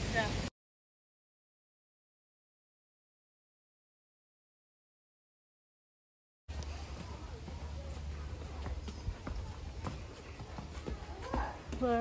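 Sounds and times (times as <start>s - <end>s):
footsteps on paved path: 6.5s - 12.0s.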